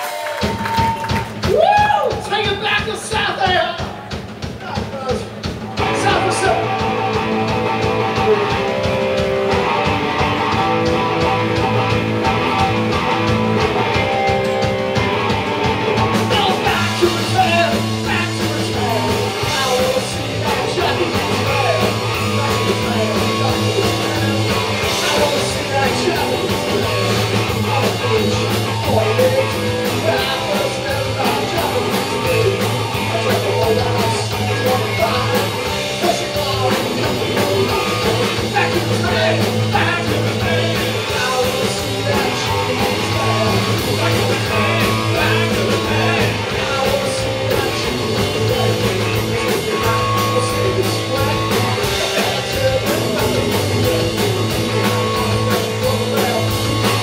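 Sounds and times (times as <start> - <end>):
drums keeping even beat: 0.0 - 57.0
live rock band playing: 0.0 - 57.0
person singing: 16.0 - 57.0.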